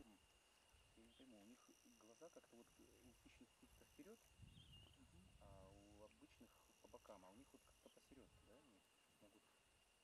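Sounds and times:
faint indistinct speech: 0.0s - 0.3s, 0.9s - 9.6s.

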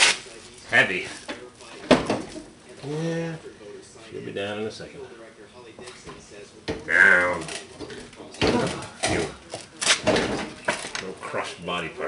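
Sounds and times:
faint low voices: 0.0s - 12.0s.

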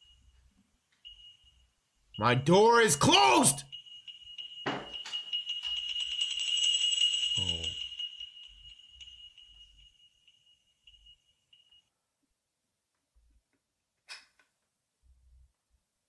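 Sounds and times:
high-pitched ringing tone: 0.0s - 2.2s, 3.0s - 11.9s.

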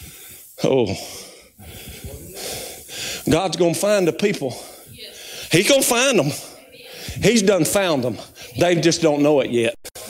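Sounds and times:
man breathing into microphone: 0.0s - 3.3s, 6.8s - 7.2s
man speaking: 0.6s - 4.8s, 5.5s - 10.0s.

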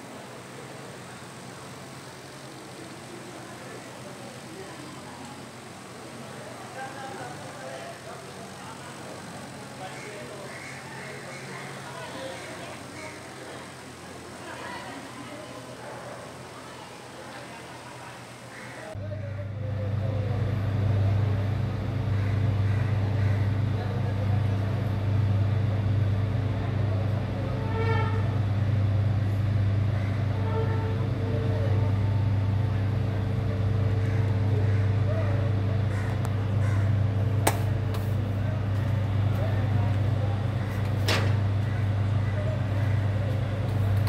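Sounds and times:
faint voices: 0.0s - 44.0s
low mechanical hum: 0.0s - 44.0s.

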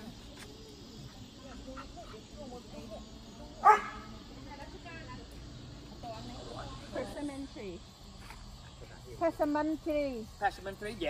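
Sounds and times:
faint talk: 0.0s - 8.2s
dog barking: 3.6s - 4.1s.

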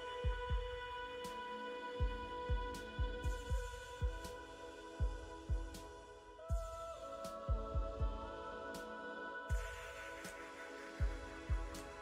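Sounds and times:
electronic kick drum: 0.0s - 1.2s, 2.0s - 6.9s, 7.5s - 8.5s, 9.5s - 10.4s, 11.0s - 12.0s.

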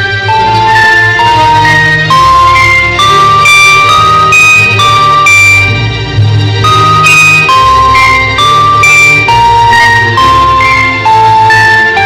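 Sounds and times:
orchestra playing: 0.0s - 12.0s.

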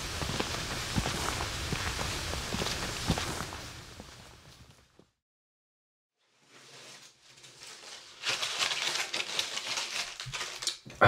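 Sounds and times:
footsteps on a path: 0.0s - 5.0s.

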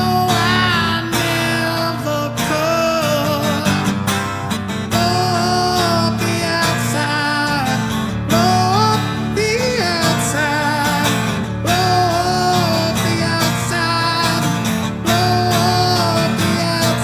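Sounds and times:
person singing: 0.0s - 4.1s, 4.8s - 17.0s
rock guitar backing track: 0.0s - 17.0s.

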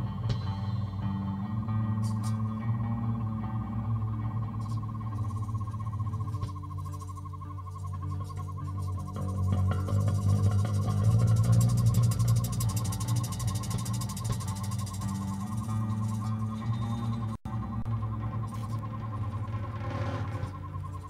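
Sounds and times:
electronic drone music: 0.0s - 21.0s.

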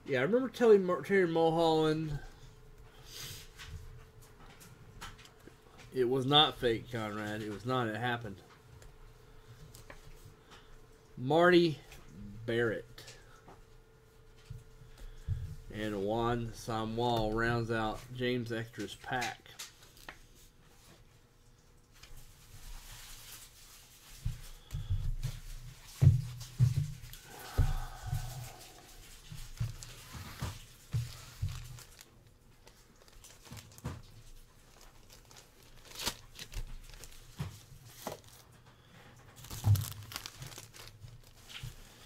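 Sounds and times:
plastic crinkling and rustling: 16.7s - 42.0s.

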